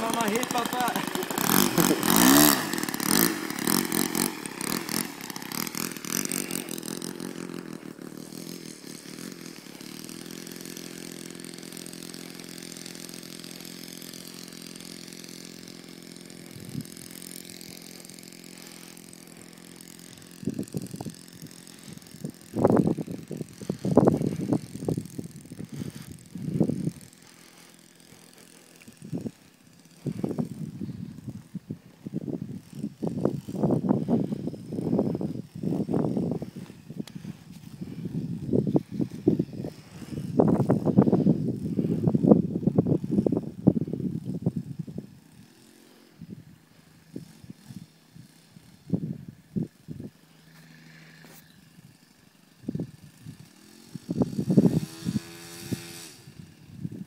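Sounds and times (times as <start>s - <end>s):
model plane engine droning: 0.0s - 57.0s.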